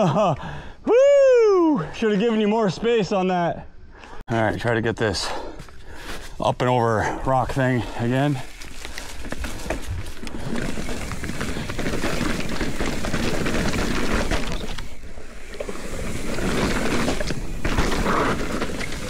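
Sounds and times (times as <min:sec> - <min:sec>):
bike tyres rolling through dry leaves: 0:05.9 - 0:19.0
bike rattling: 0:07.4 - 0:19.0.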